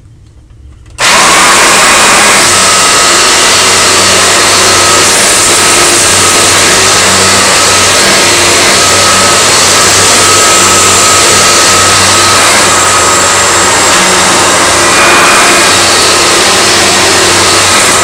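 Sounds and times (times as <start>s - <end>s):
high whine: 0.0s - 18.0s
upright vacuum cleaner running: 1.0s - 18.0s.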